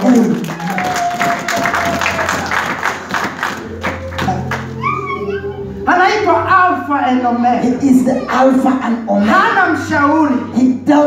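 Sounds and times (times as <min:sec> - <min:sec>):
rhythmic hand clapping: 0:00.0 - 0:04.8.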